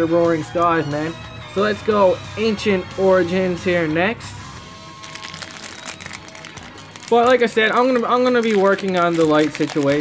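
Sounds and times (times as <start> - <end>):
faint background music: 0.0 - 10.0
foil wrapper crackling and tearing: 5.0 - 10.0.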